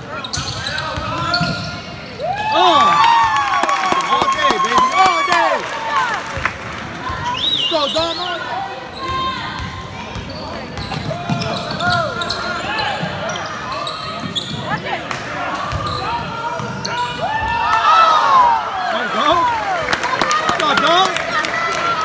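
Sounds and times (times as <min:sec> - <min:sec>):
voices of players and crowd: 0:00.0 - 0:22.0
sneakers squeaking: 0:00.1 - 0:02.4, 0:07.0 - 0:17.5.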